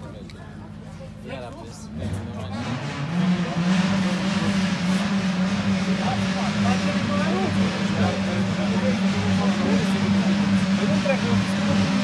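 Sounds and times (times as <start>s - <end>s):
people talking faintly: 0.0s - 12.0s
rally car engine running: 1.7s - 12.0s.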